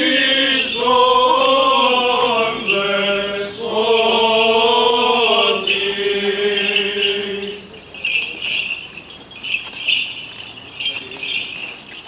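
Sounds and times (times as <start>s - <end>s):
small metal bells jingling: 0.0s - 12.0s.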